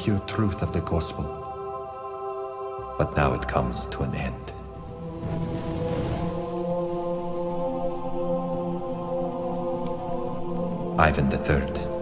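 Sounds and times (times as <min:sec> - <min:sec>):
crackling hiss: 0:00.0 - 0:12.0
sustained chord background music: 0:00.0 - 0:12.0.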